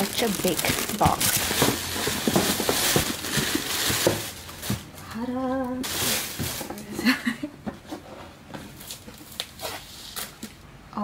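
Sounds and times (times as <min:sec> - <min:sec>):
plastic wrap rustling and crinkling: 0:00.0 - 0:07.2, 0:08.6 - 0:10.6.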